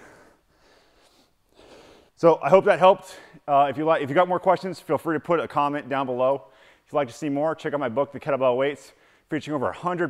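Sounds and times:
faint breath: 0.0 - 2.2, 6.5 - 6.9, 8.9 - 9.3.

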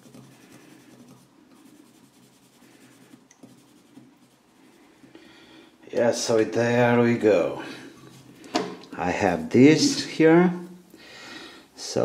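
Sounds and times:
pencil scratching on paper: 0.0 - 5.1.

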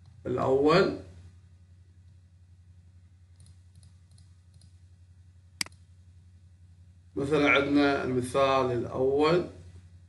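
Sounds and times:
low electrical hum: 0.0 - 10.0
computer mouse click: 3.4 - 4.8, 5.6 - 5.8.

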